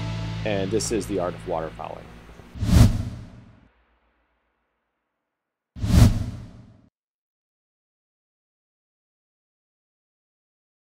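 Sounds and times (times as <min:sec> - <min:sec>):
whoosh with deep rumble: 0:02.6 - 0:03.5.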